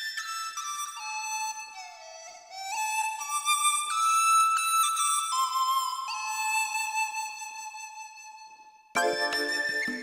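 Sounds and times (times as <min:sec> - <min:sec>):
slow solo flute melody: 0:09.0 - 0:10.0.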